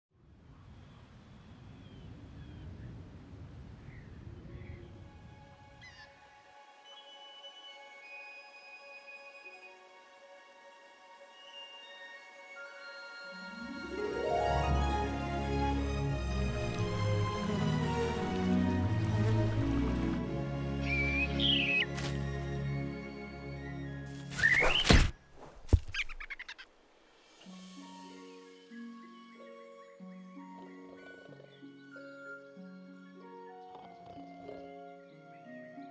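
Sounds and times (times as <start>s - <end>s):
soft sustained musical chord: 6.2s - 24.1s, 27.5s - 35.9s.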